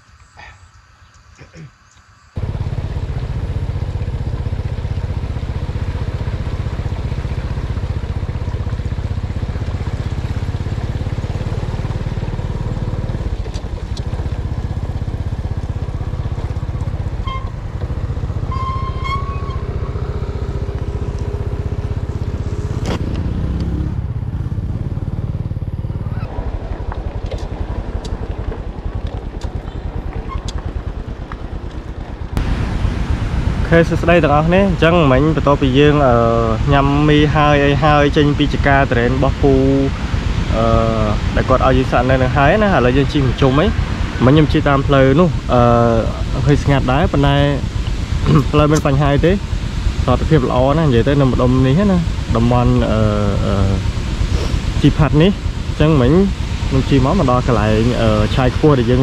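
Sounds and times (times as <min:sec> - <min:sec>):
scooter engine: 0:02.4 - 0:59.0
short high tones: 0:18.5 - 0:19.8.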